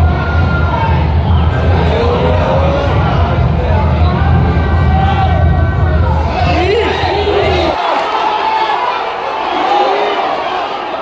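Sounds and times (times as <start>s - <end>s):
low rumble: 0.0s - 7.8s
crowd shouting: 0.0s - 11.0s.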